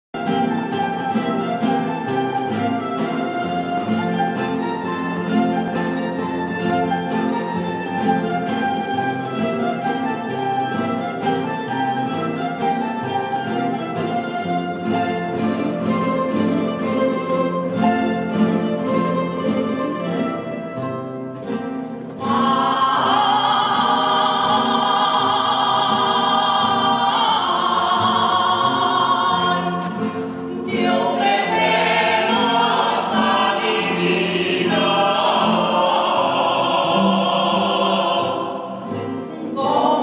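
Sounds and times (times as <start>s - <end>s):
plucked guitars and lutes playing: 0.2s - 40.0s
solo voice singing with vibrato: 22.2s - 30.0s, 39.4s - 40.0s.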